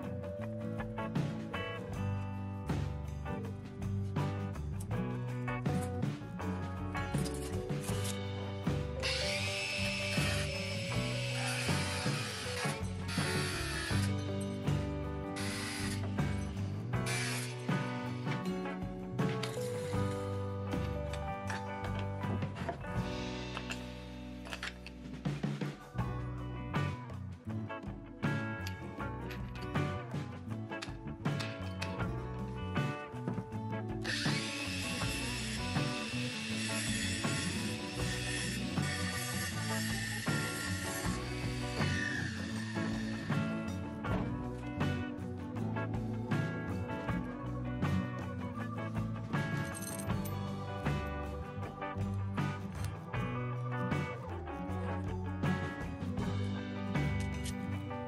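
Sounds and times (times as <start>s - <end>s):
background music: 0.0s - 58.0s
angle grinder cutting steel rod: 9.0s - 14.7s, 15.4s - 18.2s, 34.0s - 43.8s.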